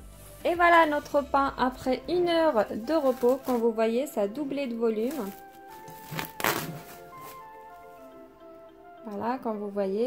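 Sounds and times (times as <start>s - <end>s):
background music: 0.0s - 10.0s
cling film crinkling: 2.5s - 3.8s, 5.0s - 8.1s.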